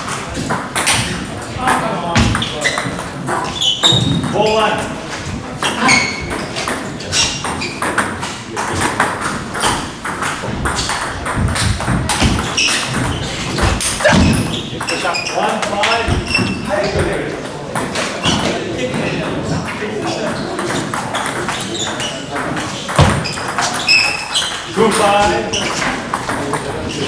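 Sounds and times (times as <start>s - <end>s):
voices talking: 12.2s - 27.0s.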